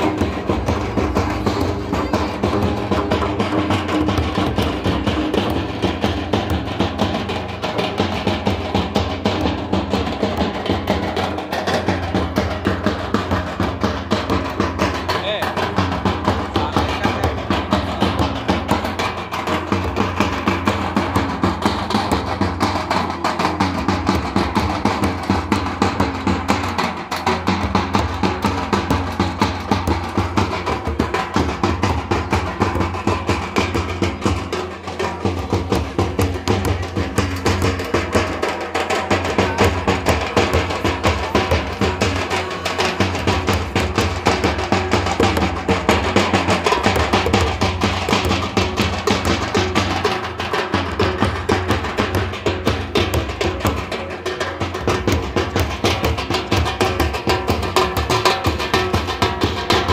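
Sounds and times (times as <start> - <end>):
people's voices: 0.0 - 6.0, 14.9 - 23.8, 28.4 - 58.4
folk drumming: 0.0 - 59.9.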